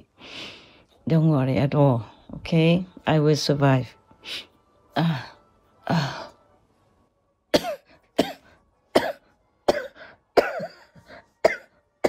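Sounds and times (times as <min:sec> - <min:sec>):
woman coughing: 0:07.5 - 0:11.8.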